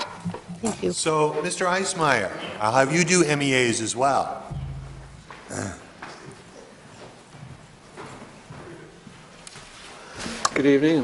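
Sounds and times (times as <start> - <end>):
room noise: 4.4 - 10.0.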